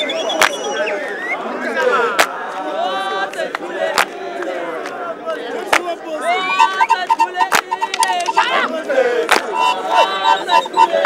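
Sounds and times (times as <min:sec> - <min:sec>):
crowd shouting: 0:00.0 - 0:11.0
high rapid trill: 0:06.3 - 0:08.7, 0:09.4 - 0:11.0.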